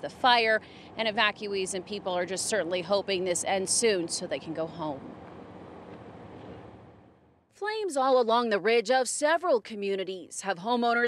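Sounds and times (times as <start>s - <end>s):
faint outdoor rush: 0.0s - 11.0s.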